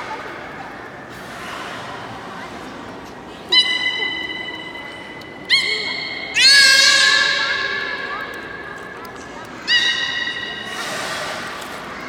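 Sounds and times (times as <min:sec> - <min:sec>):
beluga whale high-pitched calls: 0:03.5 - 0:11.7.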